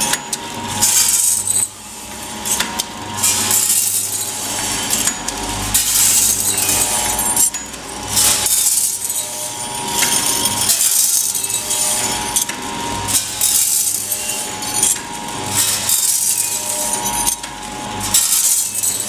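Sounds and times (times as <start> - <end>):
machine rattling bursts: 0.0 - 19.0
packing machine humming: 0.0 - 19.0.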